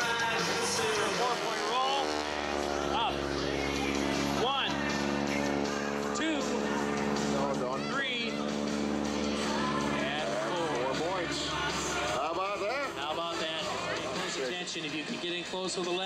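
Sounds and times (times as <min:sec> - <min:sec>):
propeller plane engine droning: 0:00.0 - 0:16.0.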